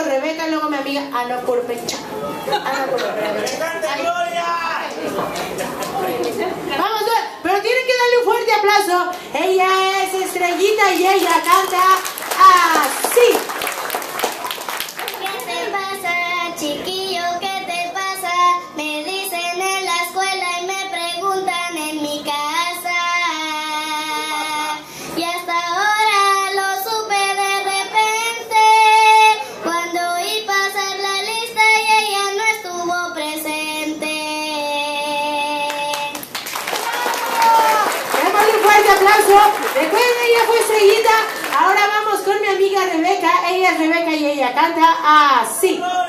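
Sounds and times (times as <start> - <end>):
girl singing into a microphone: 15.2 - 36.2.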